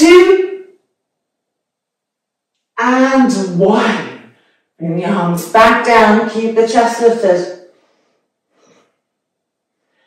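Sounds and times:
woman counting: 0.0s - 0.8s, 2.8s - 7.5s.

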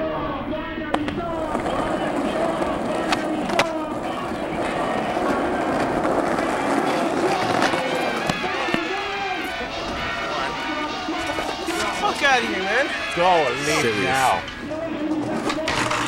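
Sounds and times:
people talking: 0.0s - 16.0s
skateboard wheels rolling on pavement: 0.3s - 16.0s
skateboard clacking: 0.6s - 16.0s.

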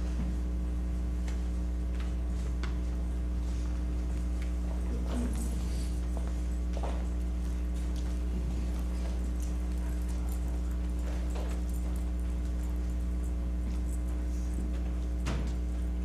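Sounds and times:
footsteps and shuffles: 0.0s - 16.0s
low electrical hum: 0.0s - 16.0s.

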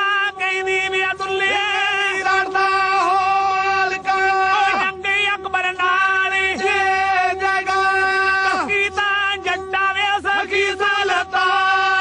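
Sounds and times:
bowed string accompaniment: 0.0s - 12.0s
steady drone: 0.0s - 12.0s
men singing folk ballad: 5.9s - 12.0s.

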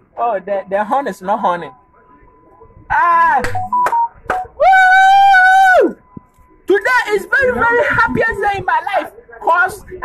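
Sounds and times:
man crying out excitedly: 4.6s - 6.0s
man's high held wail: 4.6s - 6.0s.

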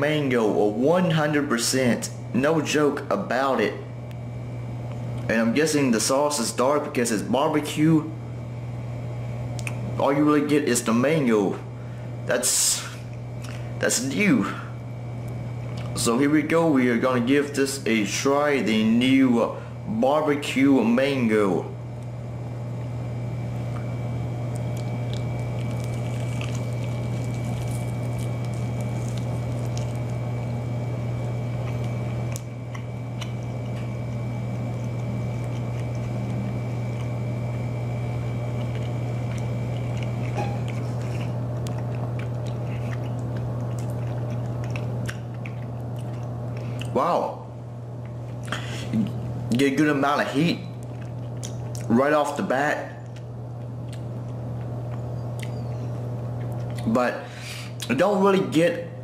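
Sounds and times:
steady low hum: 0.0s - 59.0s
soft mouth clicks: 9.6s - 9.8s, 55.4s - 55.7s
wet chewing: 23.7s - 47.0s, 50.6s - 51.9s, 53.0s - 56.9s.

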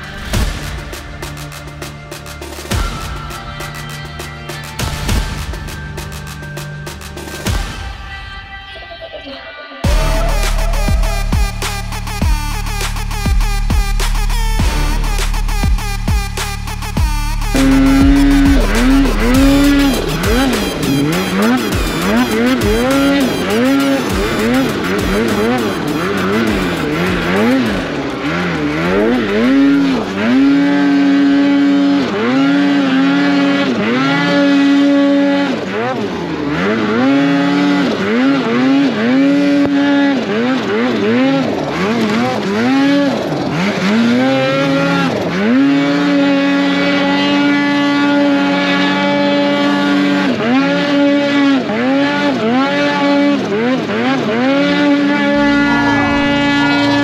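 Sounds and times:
snowmobile engine revving: 9.8s - 57.0s.

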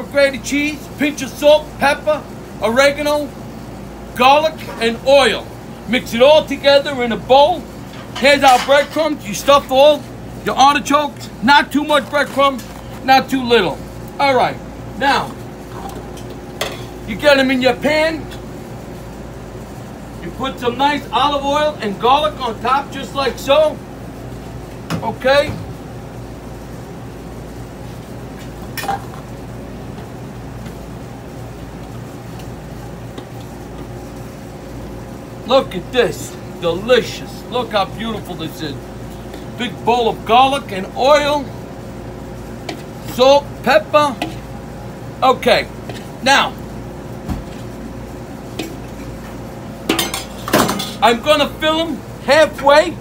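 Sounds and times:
kitchen machine hum: 0.0s - 53.0s
metal utensils clinking: 49.9s - 51.0s.

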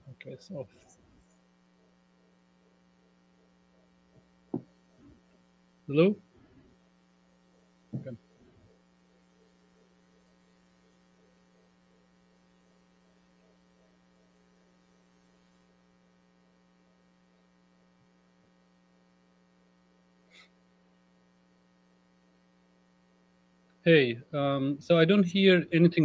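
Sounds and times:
faint electrical hum: 0.0s - 26.0s.

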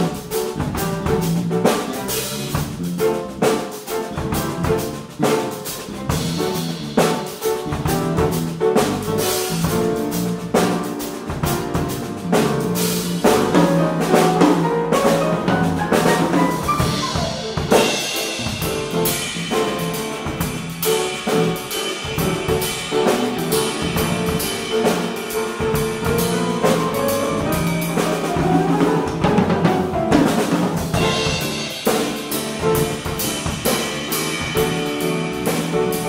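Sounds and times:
drum kit beat: 0.0s - 36.0s
grand piano: 0.0s - 36.0s.

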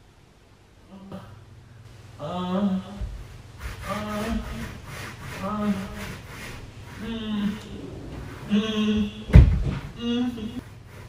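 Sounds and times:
rubbing scraping noise: 3.6s - 9.8s
drawn-out wordless vocal sound: 6.9s - 10.6s.

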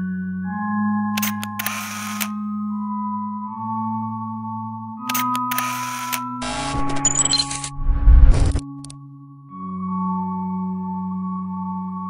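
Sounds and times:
ambient music drone: 0.0s - 6.7s
camera shutter clicks: 1.2s - 2.4s, 5.1s - 8.9s
short rasping burst: 5.1s - 7.0s.

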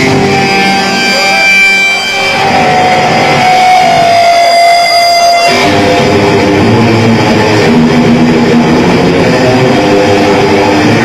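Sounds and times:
death metal band playing live: 0.0s - 11.0s.

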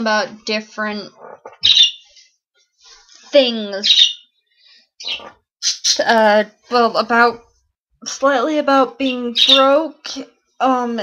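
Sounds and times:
breathy sounds: 4.4s - 5.5s.

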